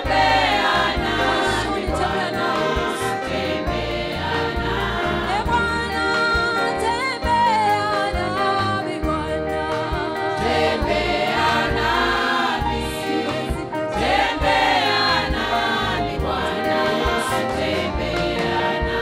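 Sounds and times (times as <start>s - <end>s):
choir singing: 0.0s - 7.3s, 8.0s - 19.0s
band accompaniment: 0.0s - 19.0s
electric bass: 0.0s - 19.0s
woman singing lead vocal: 1.3s - 3.2s, 5.0s - 13.7s.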